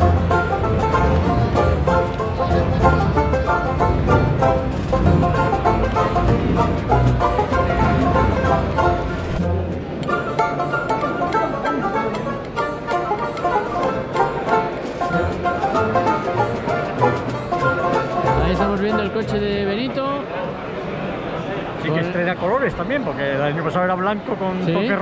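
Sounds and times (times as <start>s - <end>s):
background music with steady beat: 0.0s - 19.6s.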